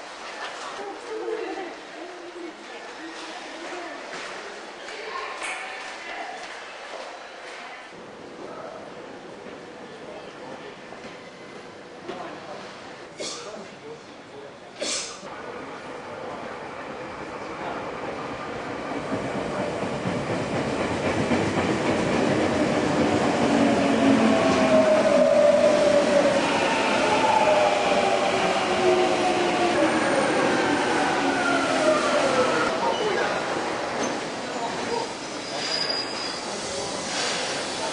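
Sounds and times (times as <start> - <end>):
train brakes squealing: 34.0 - 37.9.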